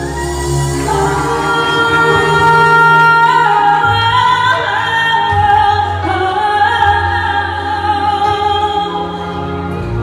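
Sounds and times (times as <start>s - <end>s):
backing band: 0.0s - 10.0s
woman singing into microphone: 0.0s - 10.0s.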